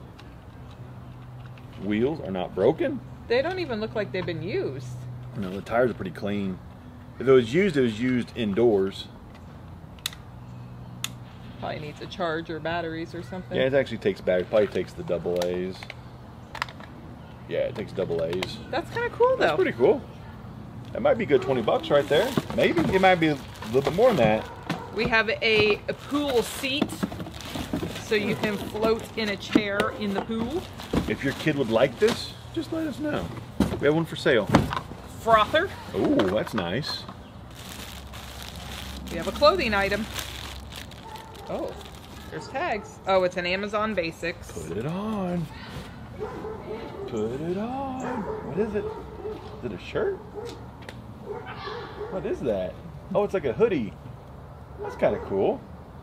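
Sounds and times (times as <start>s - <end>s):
sharp plastic clicks: 9.9s - 10.2s
plastic bag rustling: 21.8s - 25.3s, 25.9s - 29.4s, 30.0s - 33.0s, 37.5s - 42.5s.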